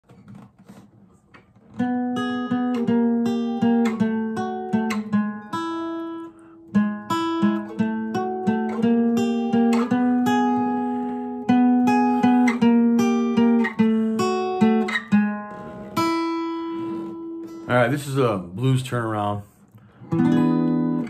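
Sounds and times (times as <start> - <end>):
acoustic guitar blues lick: 0.2 - 21.0.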